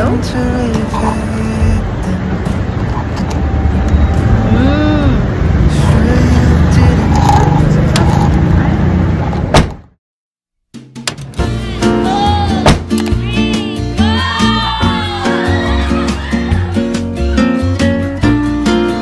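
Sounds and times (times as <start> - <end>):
background voices: 0.0 - 3.4, 4.4 - 8.8
road traffic rumble: 0.0 - 10.0.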